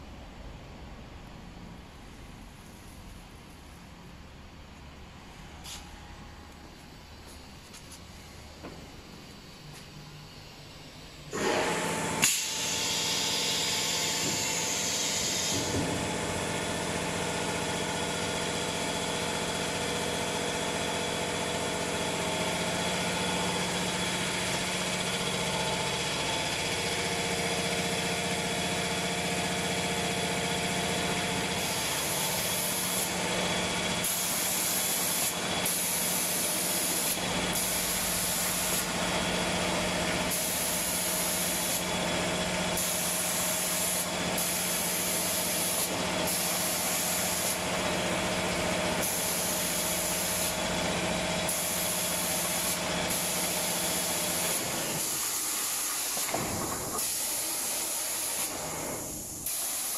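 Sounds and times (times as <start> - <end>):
machine mechanical hum: 0.0 - 59.9
spray guns hissing: 12.2 - 15.8, 31.6 - 39.1, 40.1 - 42.1, 42.7 - 48.1, 48.8 - 50.7, 51.4 - 59.9.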